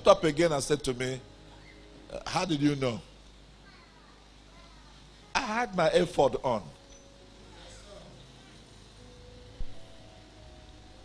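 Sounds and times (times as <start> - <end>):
steady low hum: 4.2 - 11.0.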